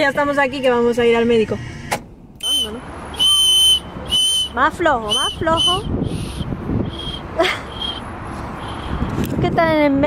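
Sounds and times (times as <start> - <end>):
toy whistle blasts: 2.4 - 8.0.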